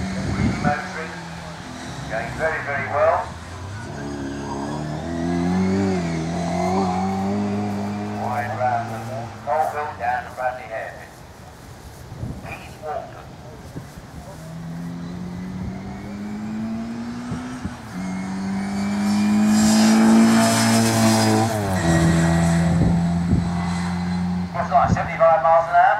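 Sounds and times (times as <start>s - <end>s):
car engine at full throttle passing: 0.0s - 10.8s, 14.1s - 25.7s.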